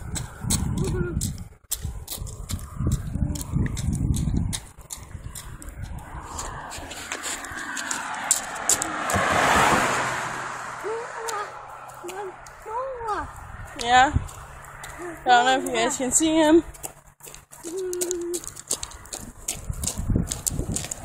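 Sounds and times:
car passing: 0.0 - 0.8, 1.4 - 17.8, 18.4 - 21.0
microphone rubbing rumble: 0.0 - 8.9, 16.6 - 21.0.

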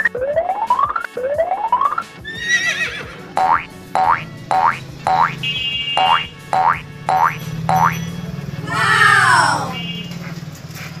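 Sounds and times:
horse whinny sound effect: 2.3 - 3.2
cartoon boing sound effects: 3.4 - 5.4, 6.0 - 8.0.

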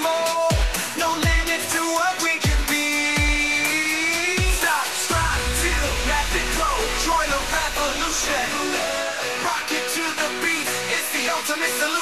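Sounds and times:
electronic rock song: 0.0 - 12.0
deep drum hits: 5.1 - 8.6
deep sustained bass: 5.1 - 8.6.

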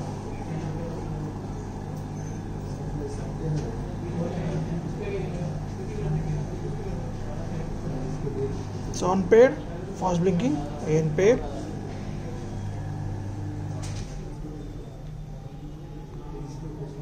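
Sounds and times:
electric motor humming: 10.0 - 14.0.

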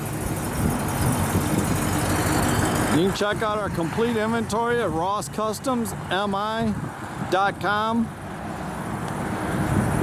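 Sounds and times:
car engine running at low speed: 0.0 - 10.0.

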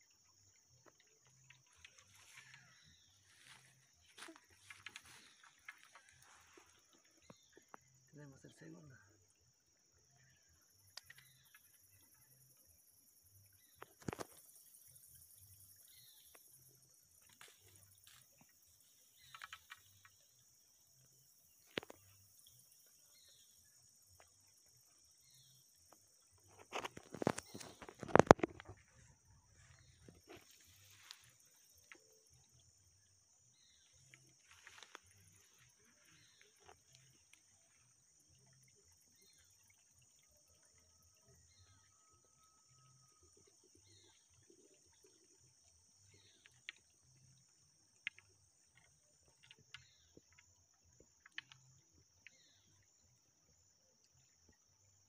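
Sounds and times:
faint rustles and clicks: 26.4 - 31.6.

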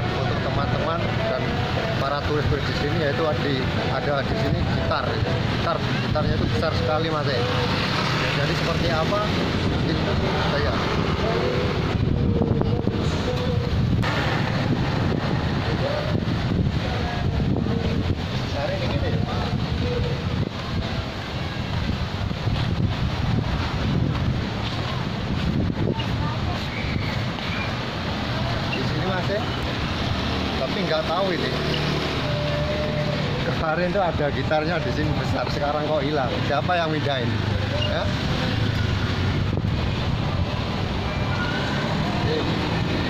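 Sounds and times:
man's voice: 0.0 - 21.2, 30.3 - 38.7, 41.8 - 43.0
road traffic: 0.0 - 43.0
street ambience: 0.0 - 43.0
wind rumbling on microphone: 0.0 - 43.0.

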